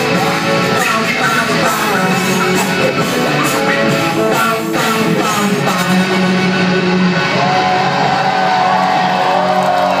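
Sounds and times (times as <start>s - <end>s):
live rock music: 0.0s - 10.0s.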